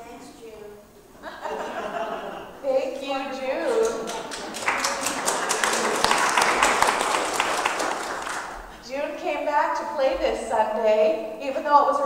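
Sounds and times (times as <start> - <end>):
crowd applauding: 3.6 - 8.7.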